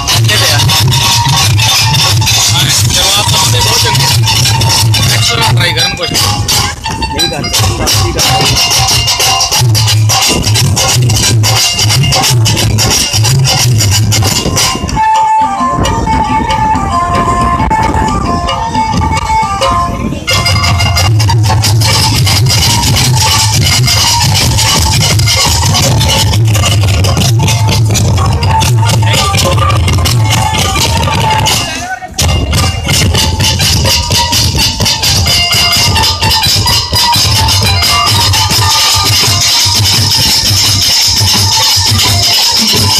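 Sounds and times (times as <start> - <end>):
dhol drumming: 0.0 - 42.9
held melody line: 0.0 - 42.9
rapid rattling percussion: 0.0 - 42.9.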